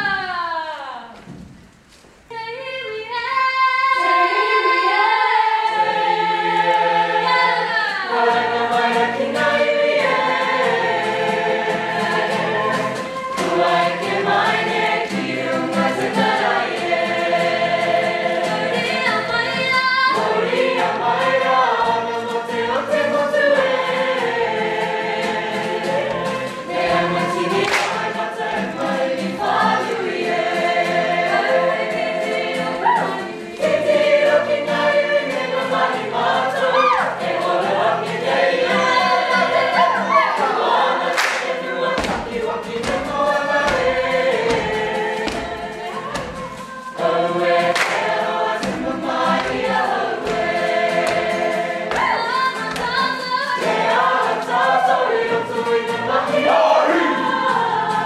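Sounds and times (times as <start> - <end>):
group singing choir-like: 2.8 - 58.0.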